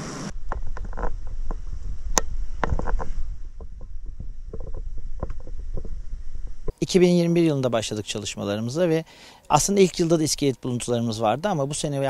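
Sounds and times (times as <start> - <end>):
wind rumble on microphone: 0.0 - 6.8
small knocks and clicks: 0.5 - 6.0.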